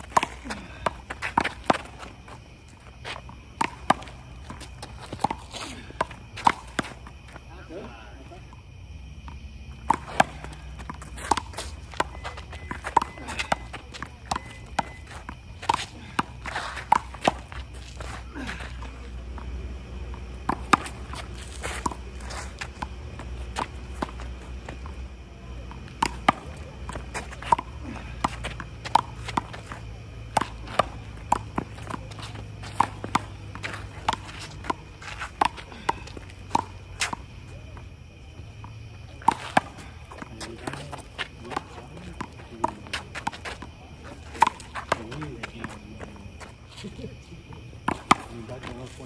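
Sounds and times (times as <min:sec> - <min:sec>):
footsteps: 0:00.0 - 0:07.5, 0:09.2 - 0:37.3.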